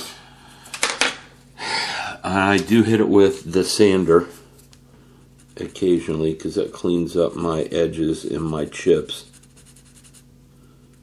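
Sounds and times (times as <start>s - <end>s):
scratchy rub: 5.3s - 11.0s.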